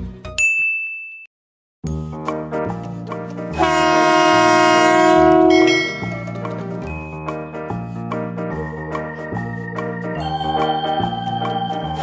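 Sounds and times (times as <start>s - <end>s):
background music with beat: 1.9s - 12.0s
loud horn blast: 3.6s - 6.1s.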